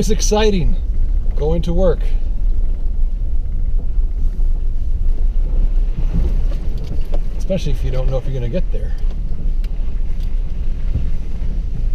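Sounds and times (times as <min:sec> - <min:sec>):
engine and tyres rumbling: 0:00.0 - 0:11.9.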